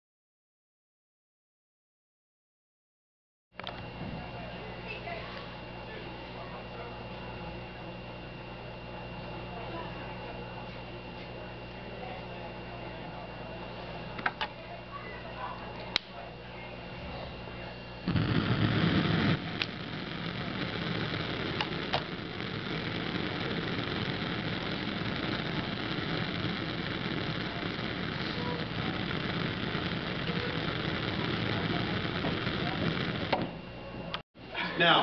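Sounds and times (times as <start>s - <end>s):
gas flame hissing: 17.0s - 33.6s.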